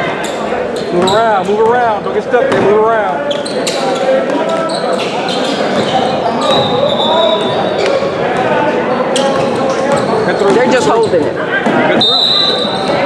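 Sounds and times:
echoing voices: 0.0 - 13.0.

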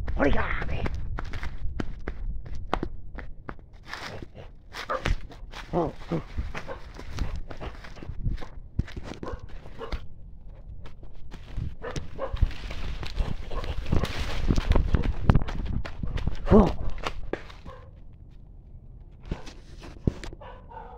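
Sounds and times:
running footsteps: 0.0 - 18.3
dog barking: 4.8 - 5.2, 6.6 - 6.9, 9.2 - 10.0, 11.8 - 12.5, 13.5 - 13.8, 17.6 - 18.0, 20.4 - 20.9
leaves and branches brushing: 11.3 - 15.7.

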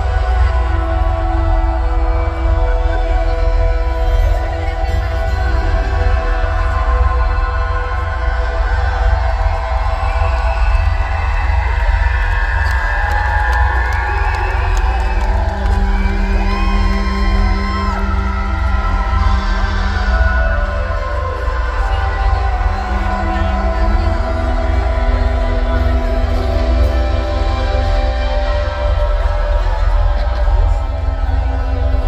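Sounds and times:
crowd cheering and whistling: 0.0 - 32.0
loud concert music with deep bass: 0.0 - 32.0.

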